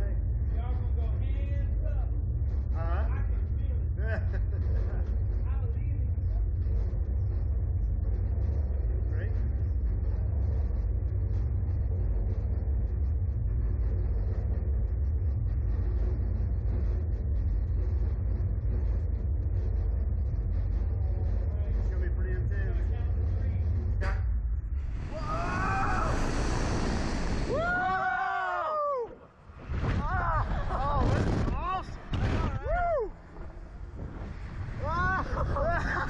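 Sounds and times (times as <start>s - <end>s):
low rumble: 0.0s - 36.0s
rushing wind: 24.7s - 36.0s
people screaming: 24.8s - 29.3s, 32.4s - 33.2s.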